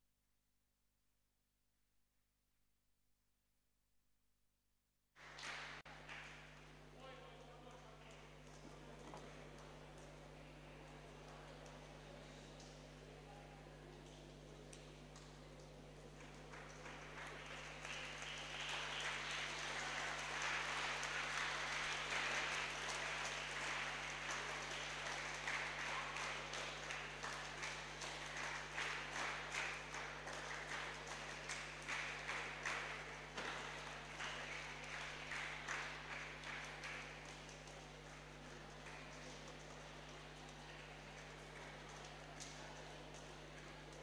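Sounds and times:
hand claps: 0:05.2 - 0:44.0
people applauding: 0:05.2 - 0:44.0.

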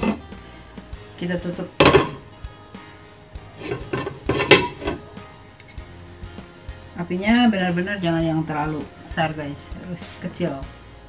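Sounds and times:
glass lid clinking on pan: 0:03.6 - 0:05.0.

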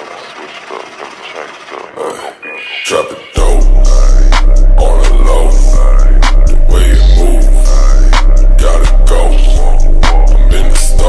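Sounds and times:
person speaking rap ad-libs: 0:00.0 - 0:11.0.

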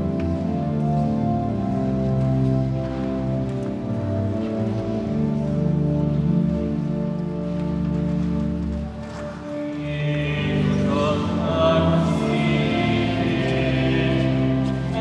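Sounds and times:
church organ sustained chords: 0:00.0 - 0:15.0.

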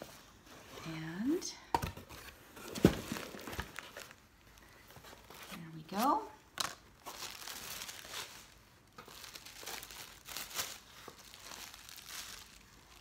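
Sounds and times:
tissue paper crinkling: 0:06.6 - 0:13.0.

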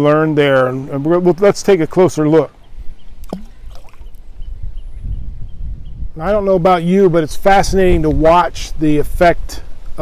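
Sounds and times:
stone plunking into water: 0:03.2 - 0:04.2.

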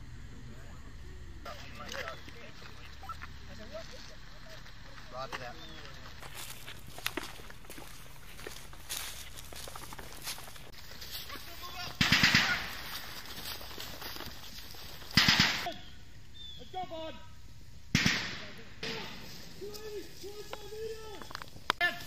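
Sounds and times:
rifle fire bursts: 0:11.9 - 0:13.0, 0:15.1 - 0:15.8, 0:17.9 - 0:19.3.

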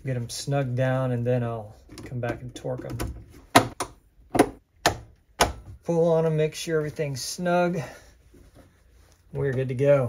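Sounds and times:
sharp knocks on wires: 0:02.8 - 0:05.7.

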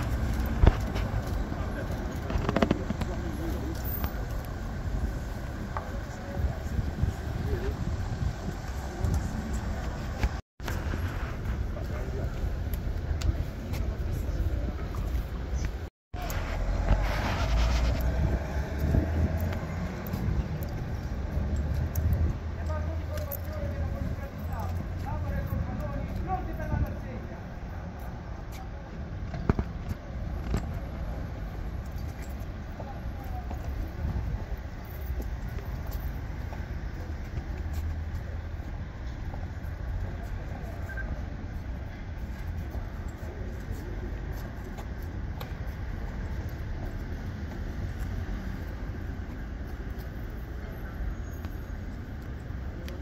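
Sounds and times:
road traffic rumble: 0:00.0 - 0:53.0.

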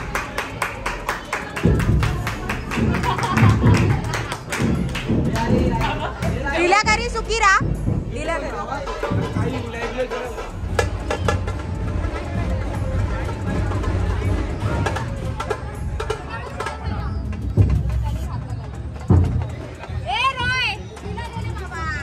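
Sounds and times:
crowd voices: 0:00.0 - 0:22.0
sharp drum strikes: 0:01.6 - 0:16.8
large drums beating: 0:01.6 - 0:21.2.

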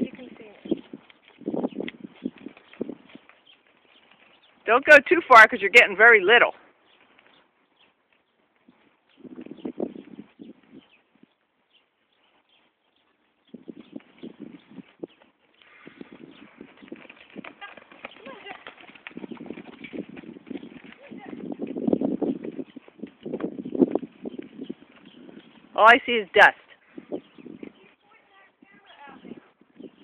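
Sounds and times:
horse hoofbeats on dirt: 0:00.0 - 0:30.0.

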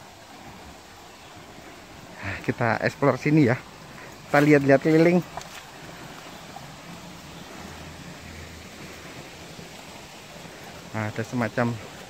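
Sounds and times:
stream water flowing: 0:00.0 - 0:12.0.

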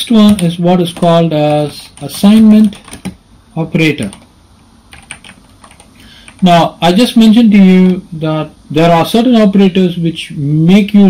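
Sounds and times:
computer keyboard keys clicking: 0:00.2 - 0:03.2, 0:04.9 - 0:06.4.

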